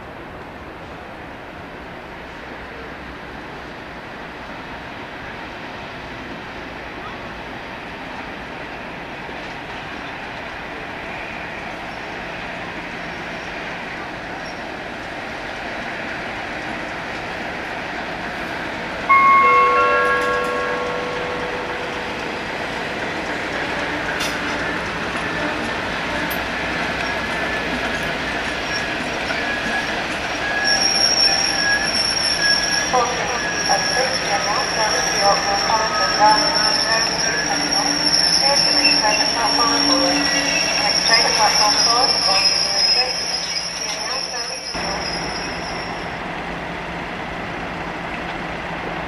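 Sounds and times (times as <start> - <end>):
diesel locomotive engine: 0.1 - 49.0
wheels squealing on rails: 8.5 - 14.9, 15.6 - 46.2.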